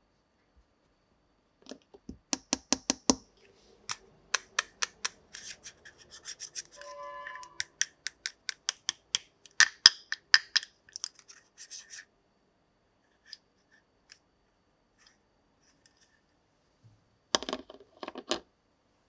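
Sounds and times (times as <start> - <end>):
plastic toy pieces clicking: 4.3 - 5.6, 7.5 - 11.2.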